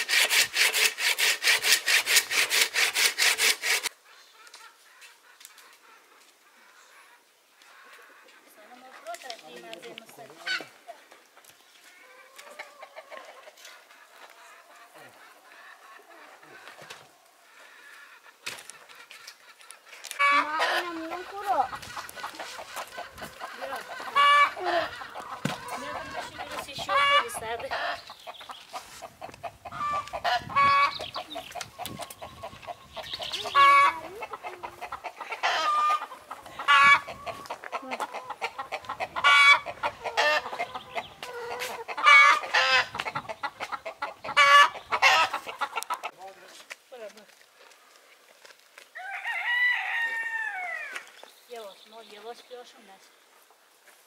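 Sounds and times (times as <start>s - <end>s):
chickens clucking: 0.0s - 47.1s
rooster crowing: 49.0s - 51.0s.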